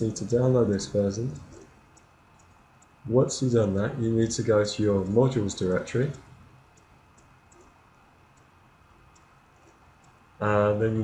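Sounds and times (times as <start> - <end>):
computer mouse clicks: 1.3 - 3.0, 6.0 - 8.5, 9.1 - 10.2.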